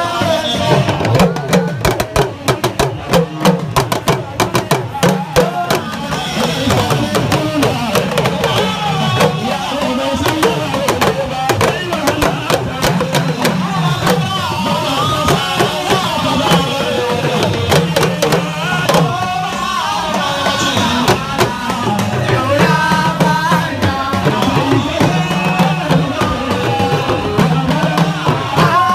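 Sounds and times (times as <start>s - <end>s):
drums beaten with sticks: 0.0s - 28.9s
man singing through a microphone: 0.0s - 28.9s.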